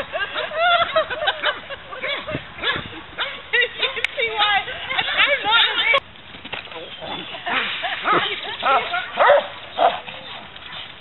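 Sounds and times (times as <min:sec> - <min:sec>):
dog barking: 0:09.2 - 0:10.0.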